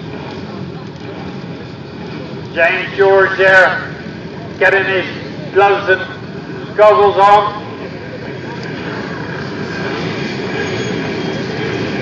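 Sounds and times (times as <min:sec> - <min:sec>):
murmur of voices: 0:00.0 - 0:10.6
distant motorcycle engines: 0:00.0 - 0:12.0.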